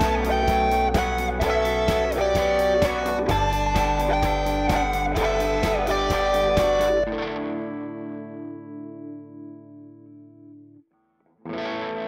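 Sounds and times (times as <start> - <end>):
drums: 0.0 - 7.1
distorted electric guitar chord: 0.0 - 9.5.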